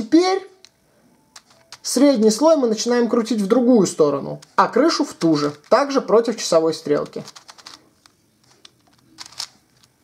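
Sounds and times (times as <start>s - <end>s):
puzzle cube clacking: 1.4s - 2.3s, 4.2s - 10.0s.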